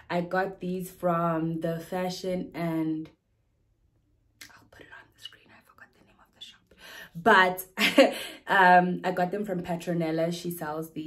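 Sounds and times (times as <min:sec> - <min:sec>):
woman whispering softly: 0:04.4 - 0:06.8.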